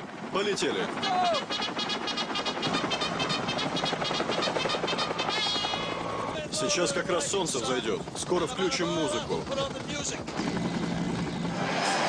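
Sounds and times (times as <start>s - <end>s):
helicopter rotor blades chopping: 0.0s - 12.0s.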